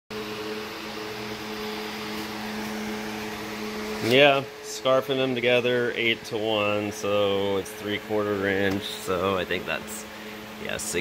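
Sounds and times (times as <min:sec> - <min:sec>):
machine hum: 0:00.1 - 0:11.0.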